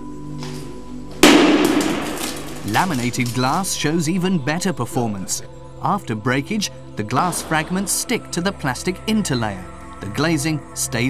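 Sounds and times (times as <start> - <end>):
soft background music: 0.0 - 11.0
glass pane cracking crash: 1.2 - 3.7
crackling glass: 1.2 - 3.9.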